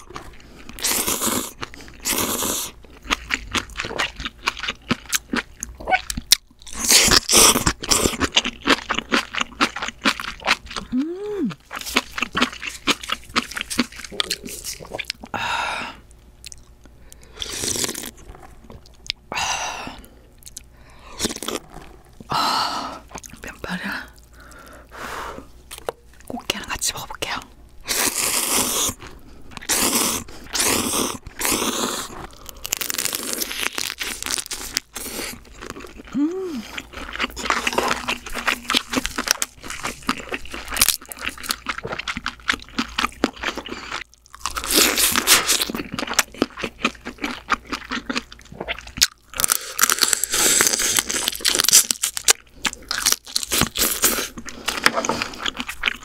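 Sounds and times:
wet chewing: 0:00.1 - 0:15.3, 0:27.9 - 0:56.0
slurping noodles: 0:17.4 - 0:18.8, 0:27.9 - 0:29.0, 0:29.6 - 0:33.6.

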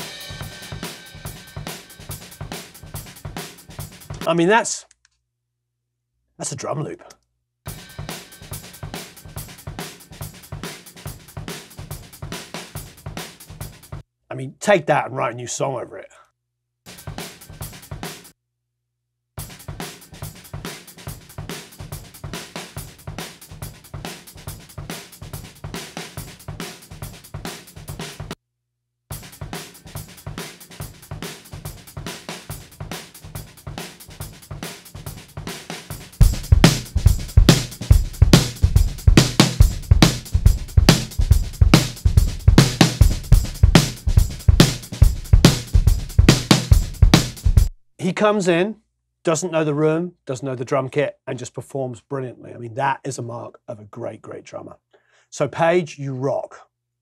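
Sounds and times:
jazz fusion drum kit playing: 0:00.0 - 0:04.3, 0:07.7 - 0:14.0, 0:16.9 - 0:18.3, 0:19.4 - 0:28.4, 0:29.1 - 0:47.8.

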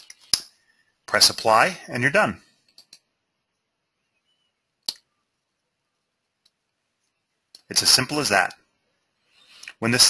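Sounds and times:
sharp click: 0:04.8 - 0:05.1.

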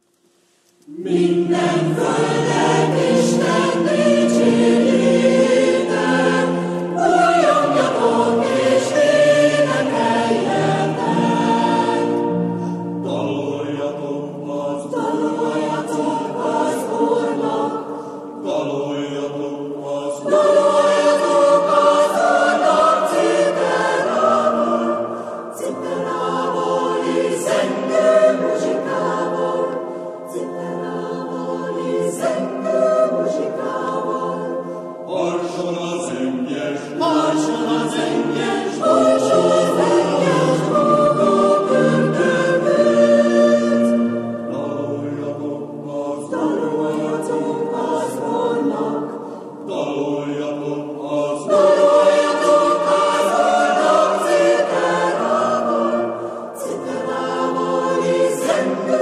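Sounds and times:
mixed choir singing: 0:00.8 - 0:59.0.

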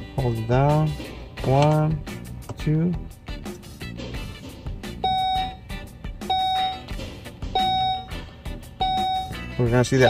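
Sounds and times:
dashboard warning chime: 0:05.0 - 0:05.7, 0:06.3 - 0:07.0, 0:07.6 - 0:08.2, 0:08.8 - 0:10.0.

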